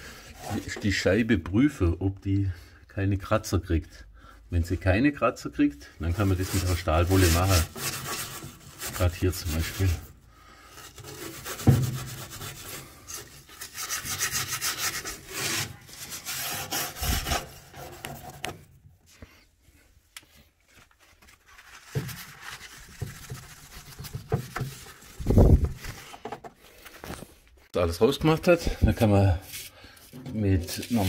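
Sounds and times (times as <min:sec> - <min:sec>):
steel wool scrubbing glass: 0:06.0 - 0:10.1, 0:10.9 - 0:17.8, 0:30.5 - 0:31.0.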